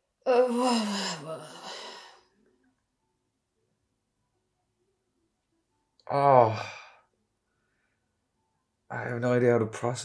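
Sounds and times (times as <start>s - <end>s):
man sighing: 0.3s - 2.2s, 6.1s - 6.9s.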